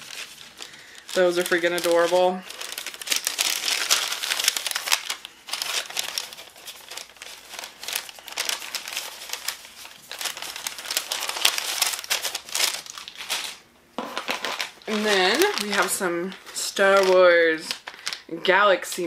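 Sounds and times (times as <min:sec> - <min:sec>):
packaging crinkling and rustling: 0:00.0 - 0:19.0.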